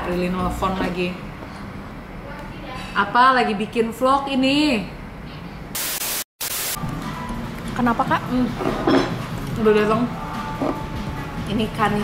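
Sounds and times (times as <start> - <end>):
hissing static burst: 5.8 - 6.8.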